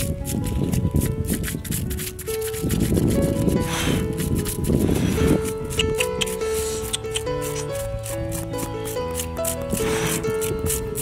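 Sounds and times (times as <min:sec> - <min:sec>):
stick scraping fish skin: 0:00.0 - 0:11.0.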